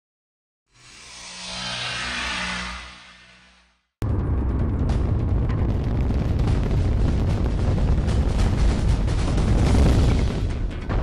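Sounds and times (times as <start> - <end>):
low hum: 0.8 - 9.9.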